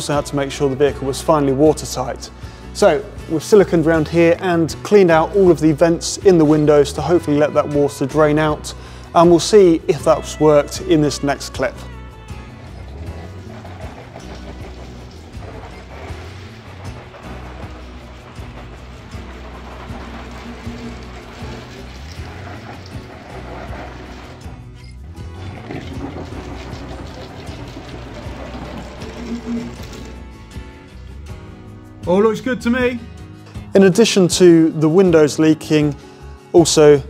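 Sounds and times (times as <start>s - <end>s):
background music: 0.0s - 37.0s
water spattering on a window: 12.6s - 24.8s, 25.4s - 30.3s.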